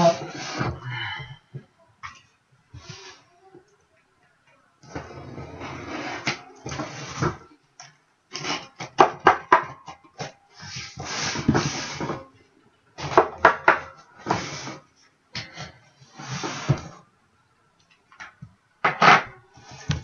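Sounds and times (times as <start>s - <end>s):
scraping against cardboard: 4.8s - 7.4s, 8.3s - 8.9s, 10.6s - 12.3s, 14.2s - 17.0s.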